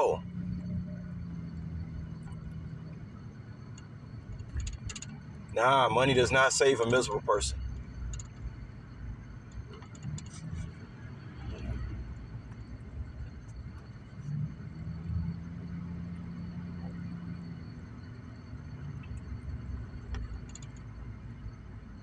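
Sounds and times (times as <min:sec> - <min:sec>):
car driving rumble inside cabin: 0:00.0 - 0:22.0
faint clicks: 0:20.1 - 0:20.9.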